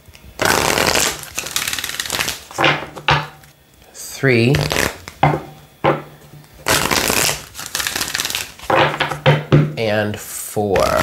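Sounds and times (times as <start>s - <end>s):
cards being riffle-shuffled: 0.4s - 3.5s, 4.5s - 5.2s, 6.4s - 9.3s.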